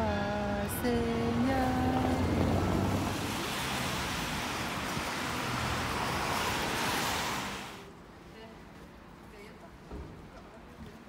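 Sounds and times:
vehicle tyre hiss: 2.7 - 7.9.

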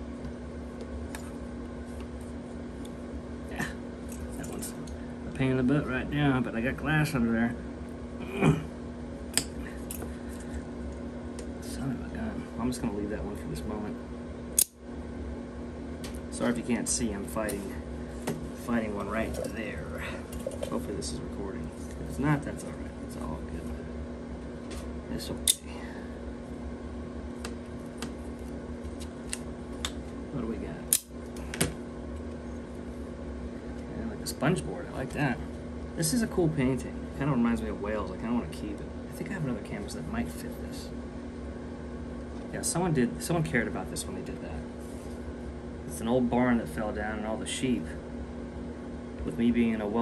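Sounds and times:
steady low hum: 0.0 - 50.0.

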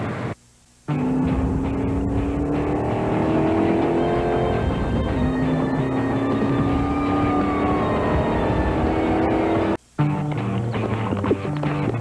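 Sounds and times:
car engine drone: 0.0 - 12.0
tone sliding down in pitch: 0.9 - 9.8
music: 0.9 - 12.0.

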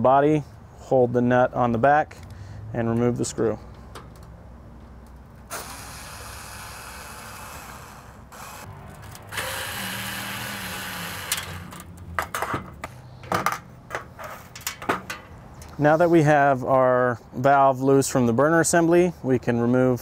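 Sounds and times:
cordless screwdriver running: 5.5 - 11.8.

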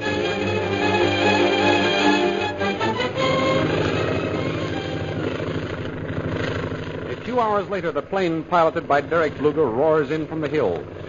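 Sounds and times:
orchestral music: 0.0 - 6.0
propeller airplane engine drone: 0.0 - 11.0.

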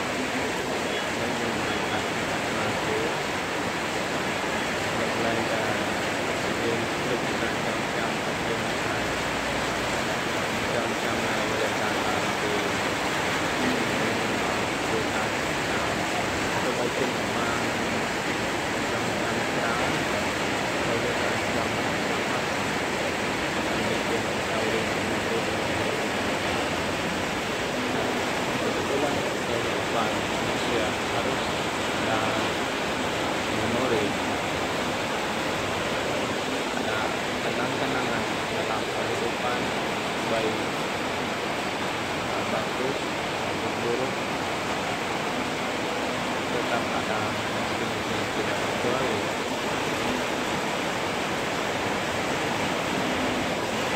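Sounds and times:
heavy rain on metal roofs: 0.0 - 53.9.

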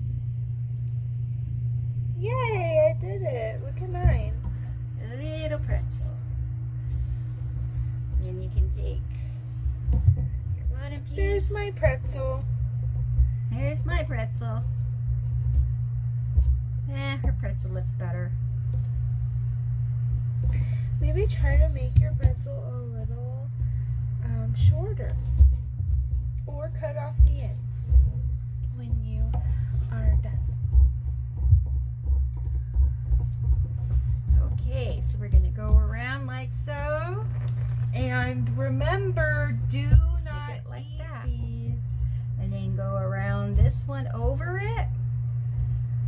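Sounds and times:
steady low hum: 0.0 - 46.0
person speaking: 2.1 - 6.3, 10.6 - 12.6, 20.6 - 25.4, 26.3 - 31.0, 34.2 - 44.9
hands rolling clay on table: 2.3 - 46.0.

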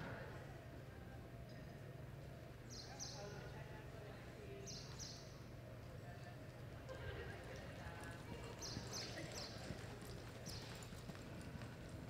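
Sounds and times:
hoofbeats on soft dirt: 7.5 - 12.0.

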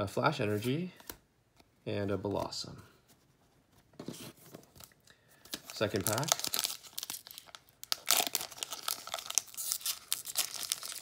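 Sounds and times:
foil wrapper crinkling: 5.5 - 11.0.

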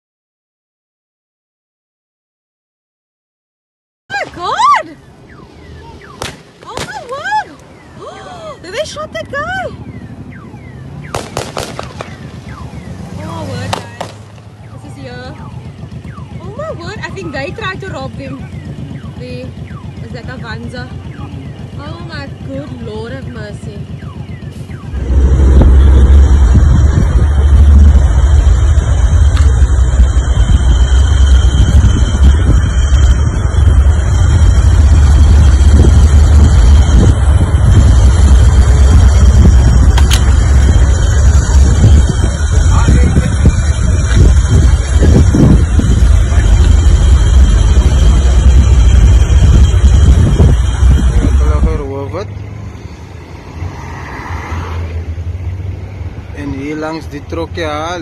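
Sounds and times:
road traffic: 4.1 - 58.0
indistinct voices: 13.0 - 24.0, 24.6 - 55.5
wind rumble on microphone: 24.9 - 52.0.

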